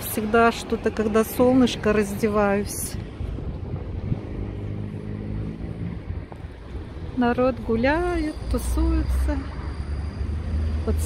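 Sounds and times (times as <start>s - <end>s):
passing vehicle engine hum: 0.0s - 11.0s
wind rumbling on microphone: 0.0s - 11.0s.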